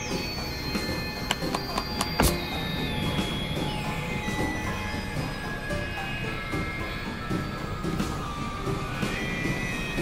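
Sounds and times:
high whistling tones: 0.0s - 10.0s
rumbling drone music: 0.0s - 10.0s.

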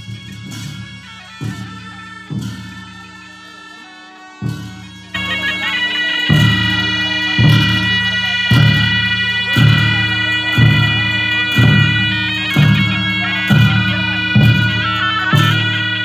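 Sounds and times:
low steady drum beat: 0.0s - 3.8s, 4.4s - 16.0s
shawms playing sustained melody: 0.0s - 16.0s.

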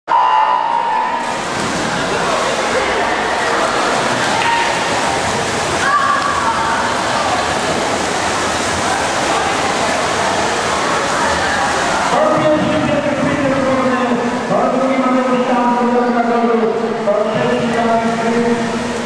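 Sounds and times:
spectators shouting and cheering: 0.1s - 12.4s
swimmers splashing: 0.1s - 19.0s.

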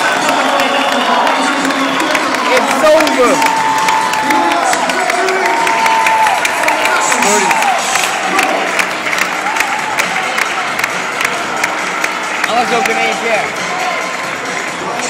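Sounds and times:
hand claps: 0.0s - 13.2s
crowd cheering: 0.0s - 15.0s.

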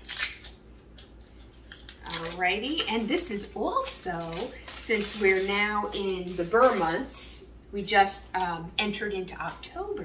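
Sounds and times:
plastic wrapper crinkling and tearing: 0.0s - 6.8s.

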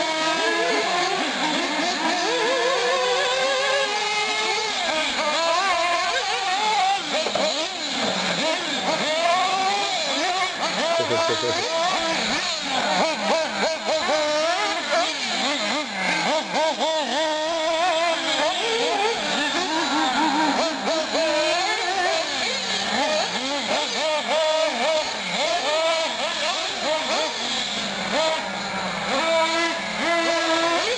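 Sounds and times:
high-revving model car engines: 0.0s - 30.9s.

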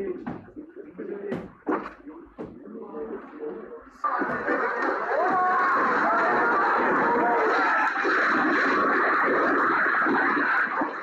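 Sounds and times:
crowd shouting and screaming: 4.0s - 11.0s.

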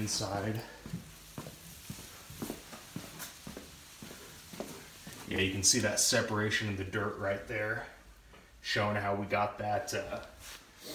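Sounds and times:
footsteps on concrete: 0.2s - 5.4s.

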